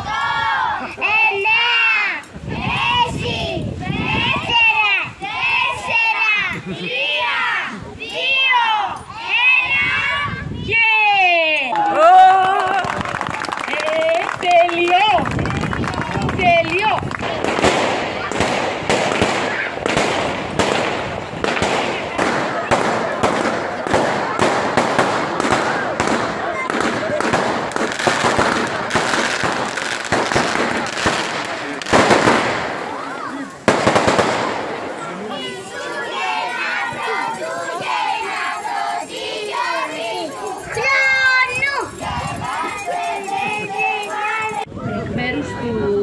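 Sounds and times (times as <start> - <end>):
crowd voices: 0.0 - 46.0
firecrackers cracking: 12.5 - 35.2.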